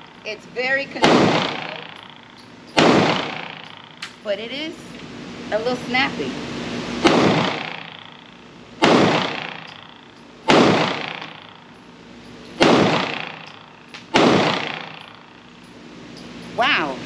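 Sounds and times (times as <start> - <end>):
pistol shots with reverberant tail: 1.0 - 4.0, 7.0 - 8.1, 8.8 - 11.5, 12.6 - 15.2.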